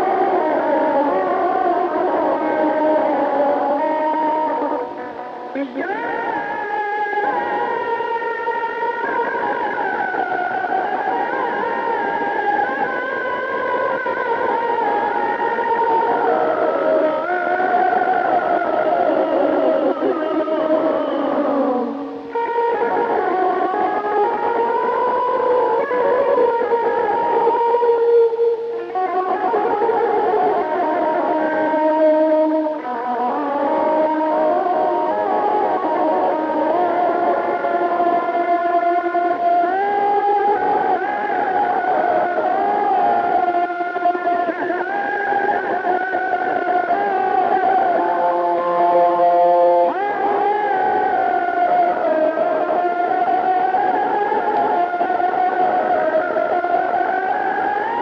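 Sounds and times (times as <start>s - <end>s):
electric guitar melody: 0.0s - 58.0s.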